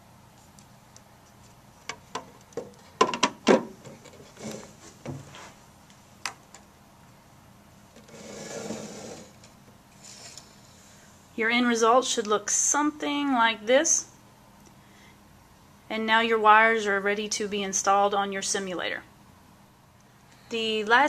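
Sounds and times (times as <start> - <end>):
scraping rub: 8.0 - 9.4.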